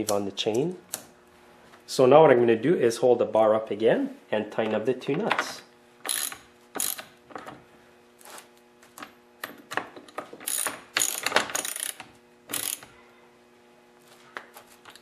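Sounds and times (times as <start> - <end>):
socket ratchet clicking: 6.0 - 7.1, 10.4 - 12.9.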